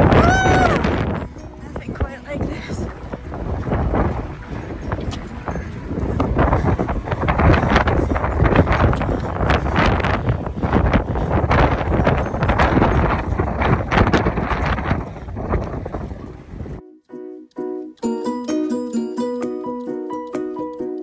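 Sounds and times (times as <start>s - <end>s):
wind blowing across microphone: 0.0s - 16.8s.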